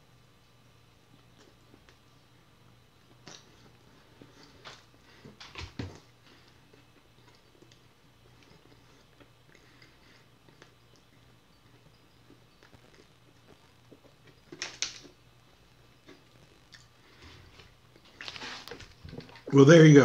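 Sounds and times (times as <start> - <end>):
wet chewing of food: 3.0 - 15.2, 16.0 - 19.5.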